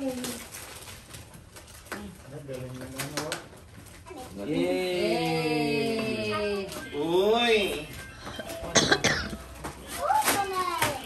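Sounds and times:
gift wrap crinkling: 0.0s - 4.5s, 6.3s - 11.0s.

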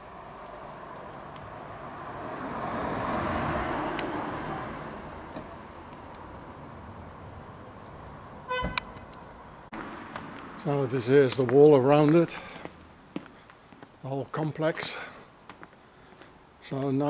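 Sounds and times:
car passing: 0.0s - 13.1s
short high horn toot: 8.5s - 9.0s.

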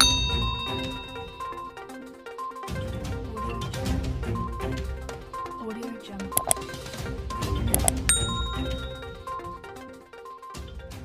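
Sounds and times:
notification bell ding: 0.0s - 1.8s, 6.4s - 6.6s, 7.8s - 9.5s
background music: 0.0s - 11.0s.

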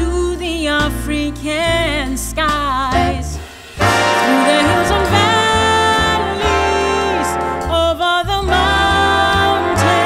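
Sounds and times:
big band jazz music: 0.8s - 10.0s.

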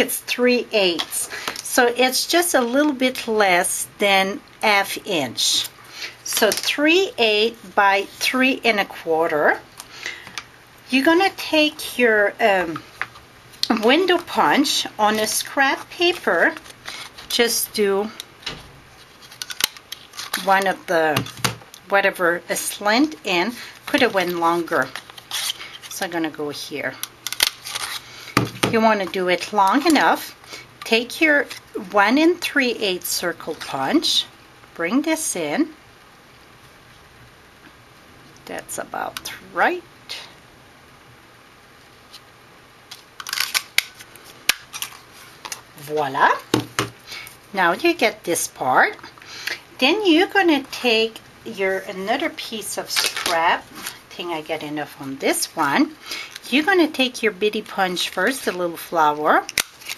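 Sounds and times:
paper handling: 51.8s - 54.0s.

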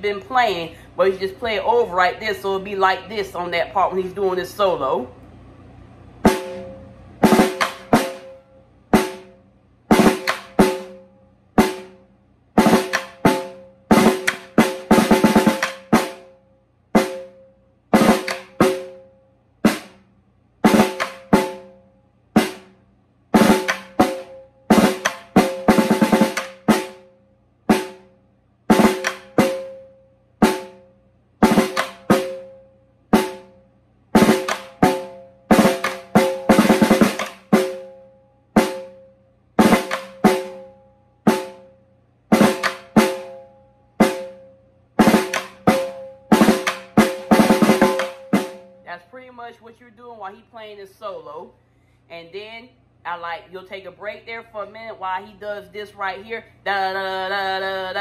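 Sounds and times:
snare drum strokes and rolls: 6.2s - 12.0s, 12.6s - 16.3s, 17.0s - 17.4s, 18.0s - 19.0s, 19.6s - 21.7s, 22.4s - 22.8s, 23.4s - 27.0s, 28.7s - 29.8s, 31.4s - 32.5s, 34.2s - 37.9s, 38.6s - 39.0s, 39.6s - 40.6s, 41.3s - 41.7s, 42.3s - 43.4s, 44.0s - 44.4s, 45.0s - 48.7s.

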